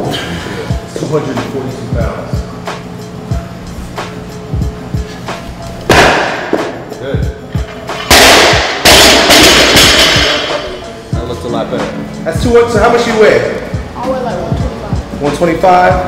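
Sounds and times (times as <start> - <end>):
weight plates crashing onto floor: 8.0 - 10.8.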